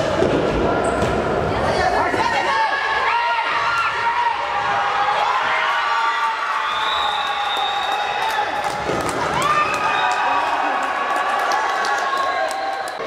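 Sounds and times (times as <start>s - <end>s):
children shouting and cheering: 8.2s - 13.0s.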